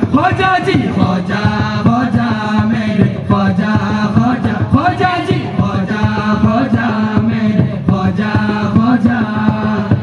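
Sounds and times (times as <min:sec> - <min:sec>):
men singing together: 0:00.0 - 0:10.0
quick percussive beat: 0:00.0 - 0:10.0.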